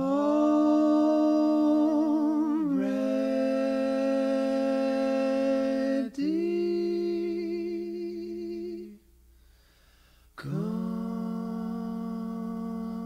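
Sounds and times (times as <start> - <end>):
person humming with vibrato: 0.0 - 9.0.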